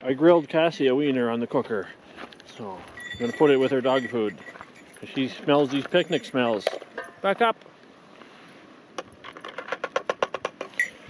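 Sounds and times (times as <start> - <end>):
brief high ring: 3.0 - 4.6.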